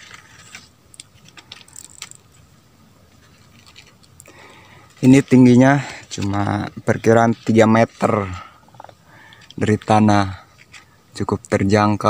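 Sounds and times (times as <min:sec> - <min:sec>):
faint clicks and rustles: 0:00.0 - 0:11.6
low background hiss: 0:00.0 - 0:12.0.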